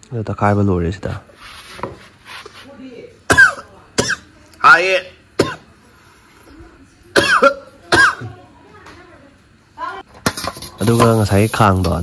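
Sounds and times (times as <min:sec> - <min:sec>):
person coughing: 0:03.3 - 0:04.3, 0:05.4 - 0:05.7, 0:07.1 - 0:08.4.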